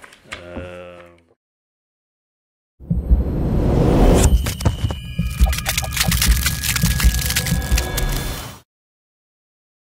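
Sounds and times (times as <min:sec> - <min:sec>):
sharp crackling clicks: 0:05.2 - 0:08.3.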